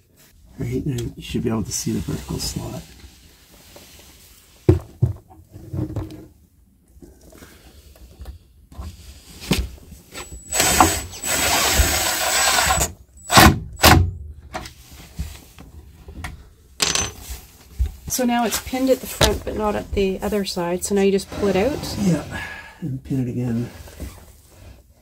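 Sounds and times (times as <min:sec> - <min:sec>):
cordless driver whining: 0:10.2 - 0:14.0.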